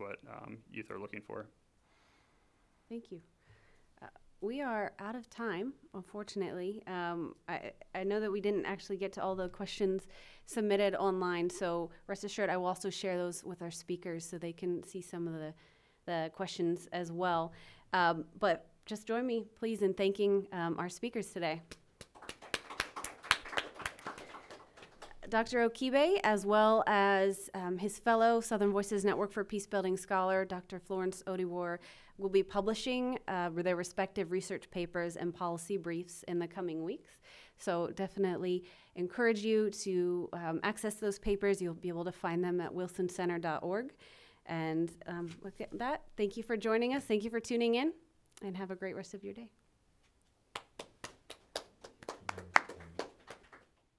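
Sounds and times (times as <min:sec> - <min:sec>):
people clapping: 0:21.7 - 0:25.5, 0:50.6 - 0:53.8
people applauding: 0:22.0 - 0:25.3, 0:50.6 - 0:53.7.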